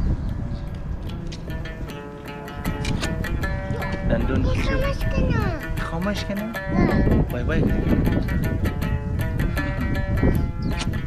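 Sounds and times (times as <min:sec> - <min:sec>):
small child talking: 0:03.7 - 0:05.8, 0:06.7 - 0:07.2.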